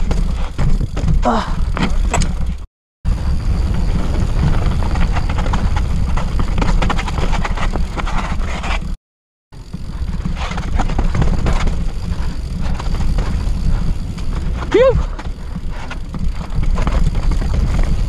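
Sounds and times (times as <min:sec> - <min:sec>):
bike rattling and clicking: 0:00.0 - 0:09.0, 0:09.6 - 0:18.0
wind rumble on microphone: 0:00.0 - 0:09.0, 0:09.6 - 0:18.0.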